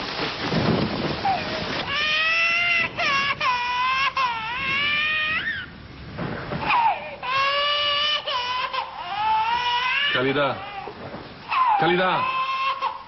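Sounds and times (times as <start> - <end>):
steady rain falling: 0.0 - 13.0
infant crying loudly: 1.3 - 5.7, 6.7 - 13.0.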